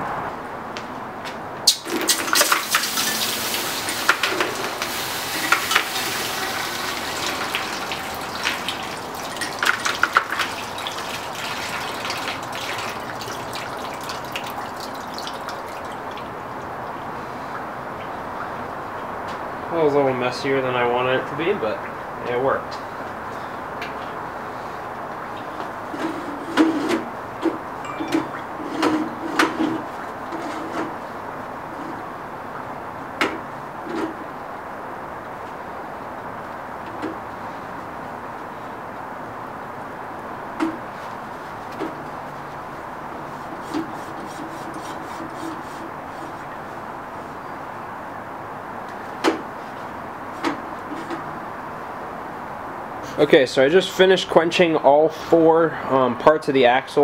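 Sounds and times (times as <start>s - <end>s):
background hiss: 1.7s - 16.2s.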